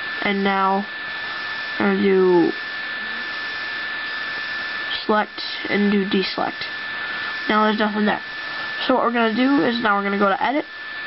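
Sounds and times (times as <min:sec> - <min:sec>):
equipment noise hiss: 0:00.0 - 0:11.0
high-pitched whine: 0:00.0 - 0:11.0.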